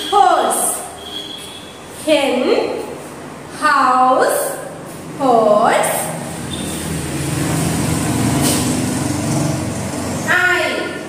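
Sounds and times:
vehicle engine drone passing: 5.0 - 11.0.

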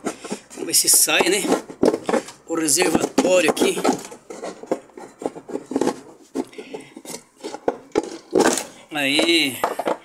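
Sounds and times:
plastic tray scraping: 0.0 - 10.0.

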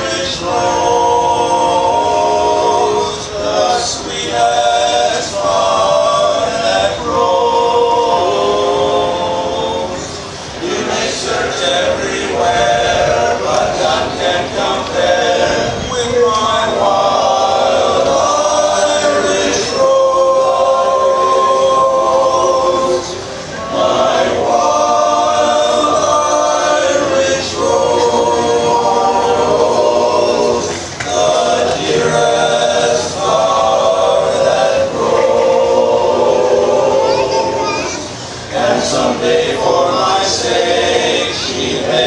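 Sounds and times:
male chorus singing a cappella: 0.0 - 42.0.

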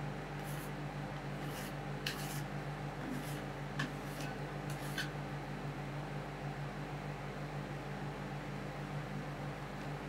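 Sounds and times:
refrigeration unit hum: 0.0 - 10.0
metal spatulas scraping ice cream: 1.4 - 5.2.

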